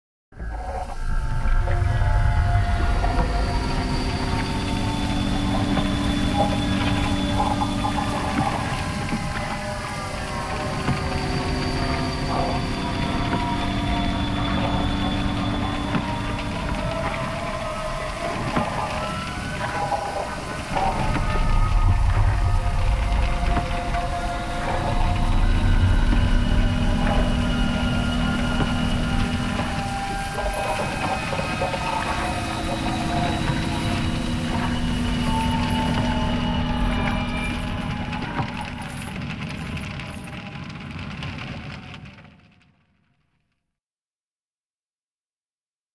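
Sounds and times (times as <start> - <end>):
crackling noisy texture: 0.3 - 43.5
ambient electronic drones: 0.4 - 41.8
deep low rumble: 0.4 - 41.9
fine clicks and crackles: 14.5 - 43.2.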